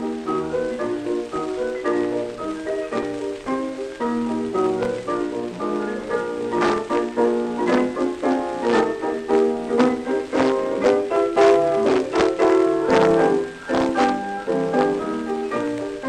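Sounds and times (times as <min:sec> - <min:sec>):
piano duet playing: 0:00.0 - 0:16.0.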